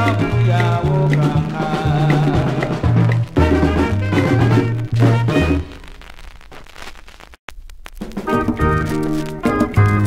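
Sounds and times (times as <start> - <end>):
vinyl crackle and hiss: 0.0 - 10.0.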